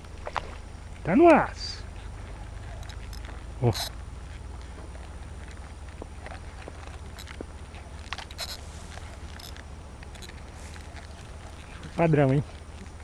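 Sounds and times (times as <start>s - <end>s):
handling clicks and rustles: 0.0s - 13.0s.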